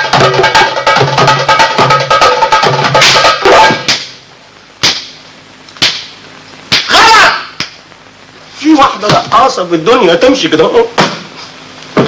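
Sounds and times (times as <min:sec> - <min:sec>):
goblet drum hand-played: 0:00.0 - 0:03.9.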